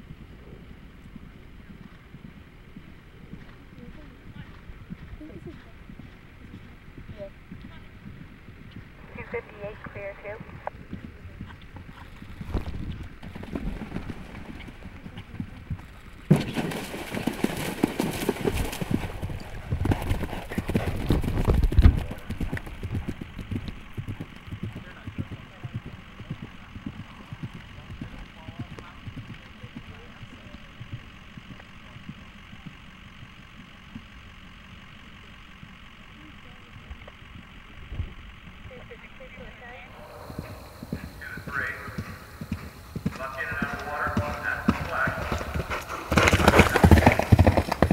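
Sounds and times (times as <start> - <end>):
galloping hoofbeats on turf: 0.0 - 39.1, 39.9 - 47.9
people talking: 3.7 - 8.0, 9.0 - 11.6, 24.7 - 32.7, 36.2 - 37.1, 38.7 - 47.1
horse splashing through water: 16.5 - 19.2.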